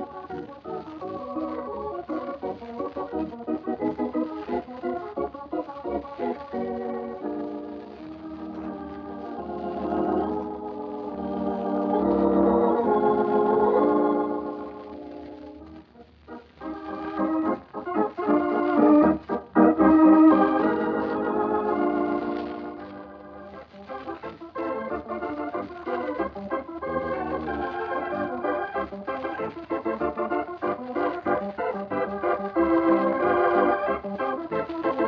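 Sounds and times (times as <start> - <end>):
organ music: 0.0 - 35.0.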